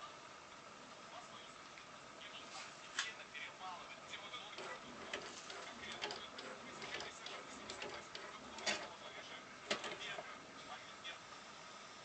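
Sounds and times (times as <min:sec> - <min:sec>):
disc carriage moving sideways: 0:04.3 - 0:10.8.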